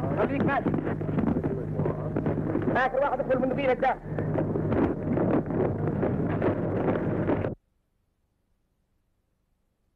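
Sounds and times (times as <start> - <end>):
wind buffeting microphone: 0.0 - 7.6
steady low hum: 0.0 - 8.2.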